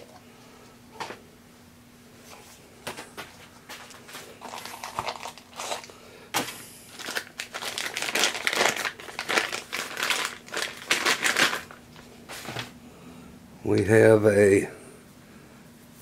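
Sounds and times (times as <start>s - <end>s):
plastic bag crinkling: 3.9s - 12.6s.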